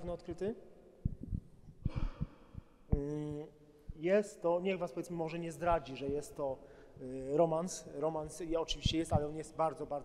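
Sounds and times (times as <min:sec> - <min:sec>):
microphone handling thumps: 0:01.0 - 0:04.0
man humming: 0:02.9 - 0:03.5.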